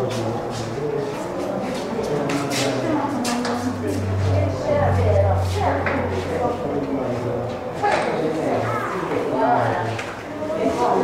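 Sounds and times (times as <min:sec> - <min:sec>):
people talking in background: 0:00.0 - 0:11.0
low steady hum: 0:02.8 - 0:07.8.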